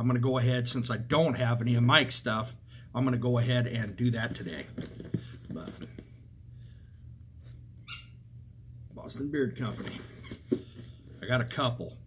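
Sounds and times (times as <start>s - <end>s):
low room hum: 0.0s - 12.0s
dog whimpering and squeaking: 7.8s - 8.2s.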